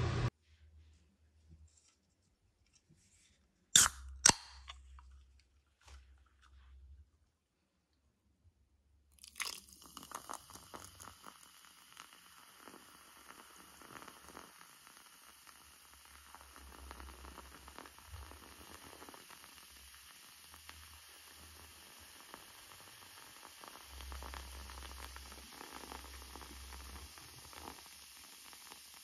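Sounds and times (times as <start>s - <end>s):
soft drink fizzing: 9.2s - 29.0s.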